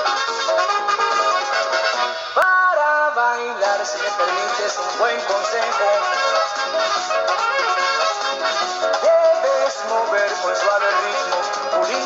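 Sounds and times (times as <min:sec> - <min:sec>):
tropical dance band music: 0:00.0 - 0:12.0
man singing: 0:02.4 - 0:06.6, 0:09.0 - 0:12.0.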